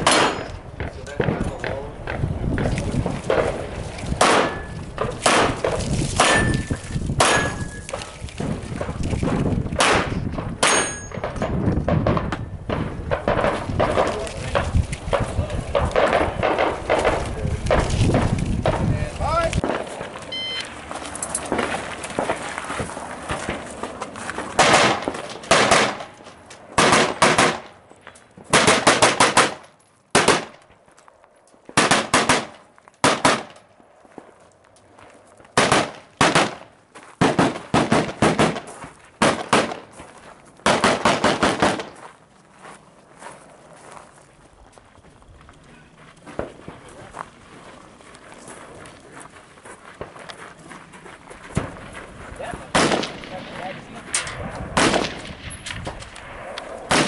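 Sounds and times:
rapid gunshots: 0:24.6 - 0:26.1, 0:26.8 - 0:27.7, 0:28.5 - 0:29.6, 0:31.8 - 0:33.5, 0:35.6 - 0:36.6, 0:37.2 - 0:38.6, 0:40.6 - 0:41.9, 0:52.7 - 0:54.0, 0:54.8 - 0:55.4.

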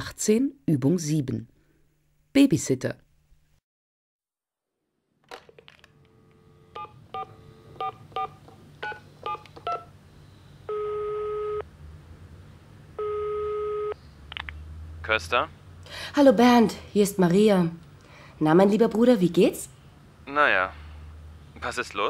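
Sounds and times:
telephone ringing tone: 0:06.0 - 0:09.8, 0:10.7 - 0:11.6, 0:13.0 - 0:14.0
push-button tone beeps: 0:06.8 - 0:09.9.

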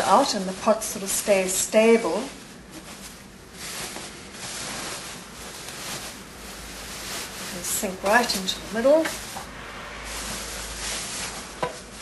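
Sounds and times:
rustling of insulated filling: 0:00.0 - 0:12.0.

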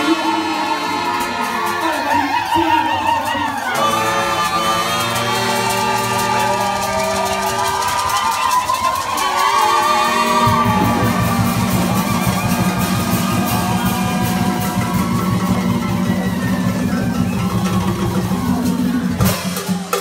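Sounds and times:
low horn line: 0:00.0 - 0:08.1, 0:09.2 - 0:19.2
brass and drum band playing: 0:00.0 - 0:20.0
fast drum beat: 0:04.1 - 0:20.0.

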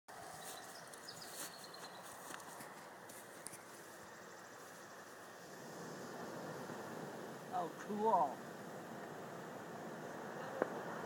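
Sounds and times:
powder fountain hissing and crackling: 0:03.6 - 0:11.0.

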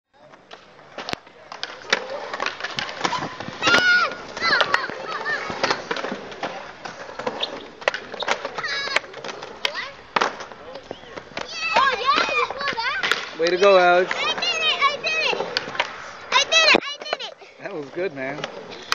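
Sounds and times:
skateboard wheels rolling: 0:00.2 - 0:18.9
skateboards clacking on concrete: 0:00.2 - 0:18.9
children's voices and shouts: 0:02.8 - 0:06.0, 0:08.4 - 0:10.1, 0:11.4 - 0:17.6.

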